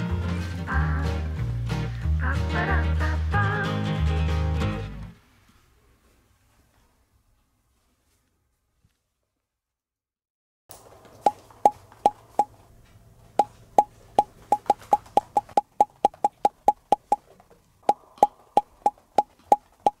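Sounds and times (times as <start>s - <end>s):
woodblock-like tapping music: 13.4s - 17.2s, 17.8s - 20.0s.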